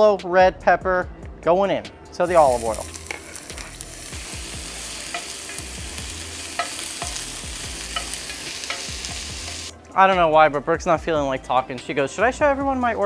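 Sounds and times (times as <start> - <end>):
vegetables sizzling in oil: 2.2 - 9.7
spoon scraping a pan: 4.7 - 9.7.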